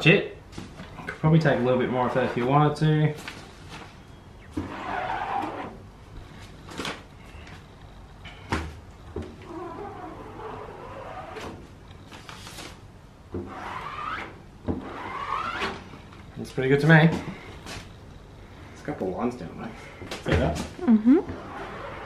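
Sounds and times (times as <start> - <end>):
squeegee scraping across mesh: 1.7 - 2.7, 4.5 - 6.8, 9.5 - 12.8, 13.4 - 15.9, 21.3 - 22.0.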